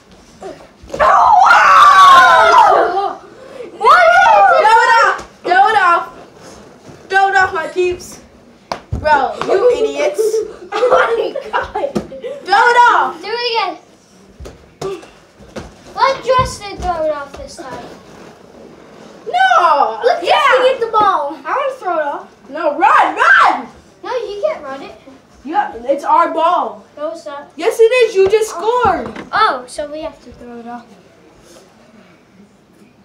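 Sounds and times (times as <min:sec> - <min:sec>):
child screaming: 0:01.0 - 0:03.2, 0:03.8 - 0:05.1.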